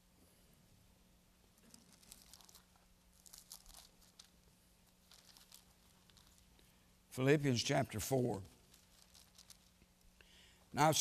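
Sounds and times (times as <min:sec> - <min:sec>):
low steady hum: 0:00.0 - 0:11.0
thin pages being turned: 0:01.8 - 0:04.4, 0:08.6 - 0:09.8.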